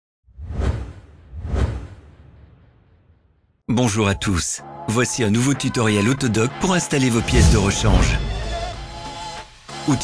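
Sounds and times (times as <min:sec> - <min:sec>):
whoosh sound effects: 0:00.3 - 0:03.1.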